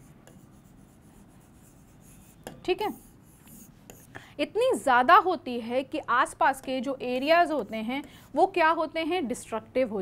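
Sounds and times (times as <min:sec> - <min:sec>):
marker writing on a board: 0:00.0 - 0:04.1.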